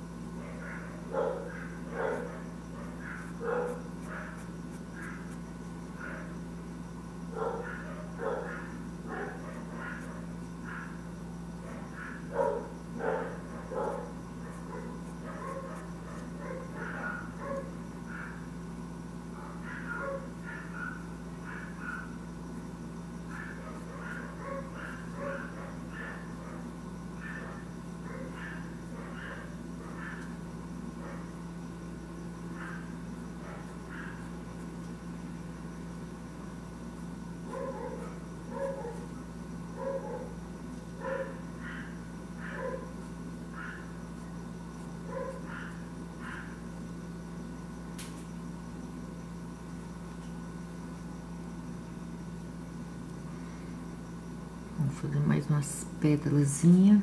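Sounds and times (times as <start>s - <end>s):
steady low hum: 0.0s - 57.0s.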